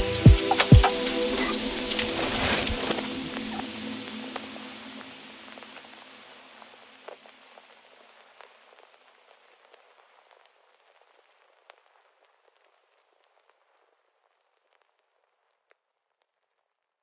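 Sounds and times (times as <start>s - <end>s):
rain-like hiss with crackles: 0.0s - 17.0s.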